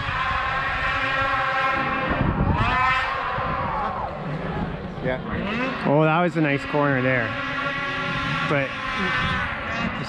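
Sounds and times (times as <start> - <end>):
snowmobile engine high revs: 0.0 - 10.0.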